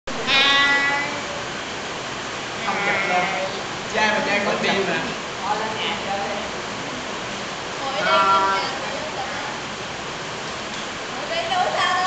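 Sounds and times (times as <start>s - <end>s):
young voices: 0.2s - 1.4s, 2.6s - 3.7s, 7.8s - 9.6s, 11.2s - 12.0s.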